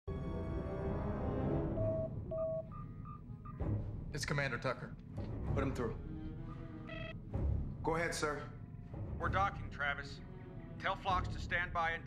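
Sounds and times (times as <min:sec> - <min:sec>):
short electronic beeps: 0:01.8 - 0:03.2.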